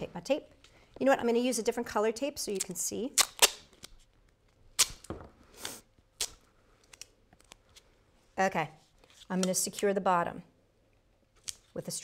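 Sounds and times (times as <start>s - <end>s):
duct tape ripping: 2.6s - 4.0s, 4.7s - 7.5s.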